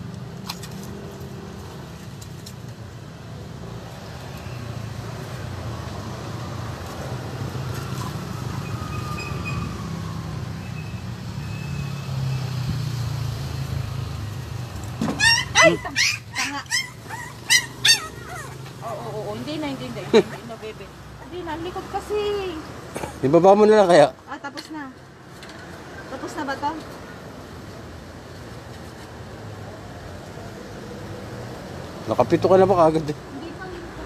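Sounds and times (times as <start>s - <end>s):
puppy yelping and crying: 15.1s - 19.1s.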